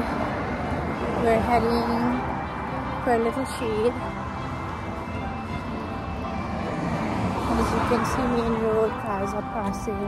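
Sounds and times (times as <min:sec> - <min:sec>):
road traffic rushing by: 0:00.0 - 0:10.0.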